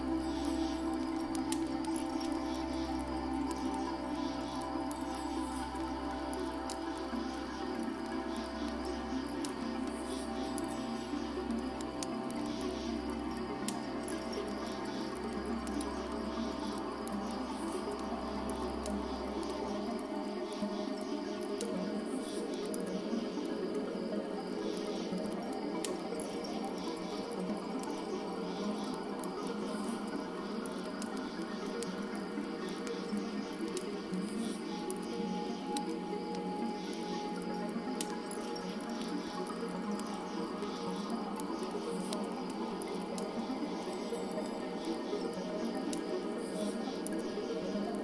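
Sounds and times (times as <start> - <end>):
crickets chirping: 0.0 - 48.0
fire crackling and popping: 0.0 - 48.0
soft ambient music: 0.0 - 48.0.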